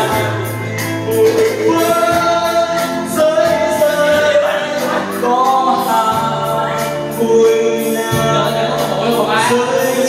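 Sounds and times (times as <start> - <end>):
backing track with steady beat: 0.0 - 10.0
man singing into microphone: 0.0 - 10.0.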